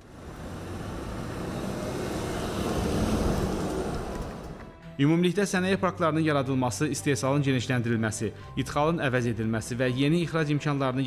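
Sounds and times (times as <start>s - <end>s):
car driving past: 0.0s - 4.8s.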